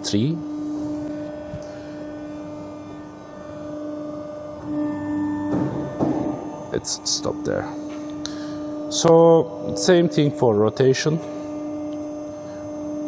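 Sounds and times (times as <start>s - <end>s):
electric hum of machine drive: 0.0s - 13.0s.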